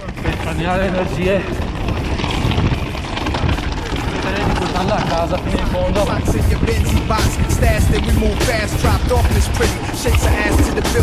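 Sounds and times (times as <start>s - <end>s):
rumbling wind noise: 0.0s - 11.0s
hip-hop music: 5.2s - 11.0s.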